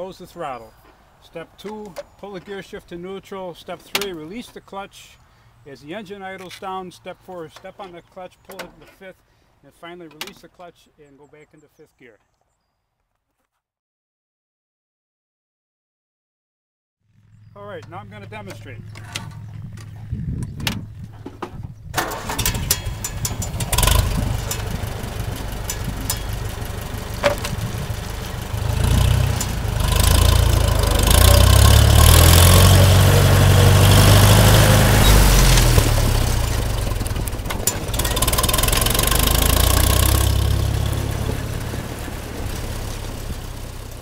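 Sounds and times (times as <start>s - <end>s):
tractor engine cranking and starting: 0.0s - 4.8s, 6.2s - 9.1s, 17.3s - 44.0s
tractor engine running: 17.1s - 44.0s.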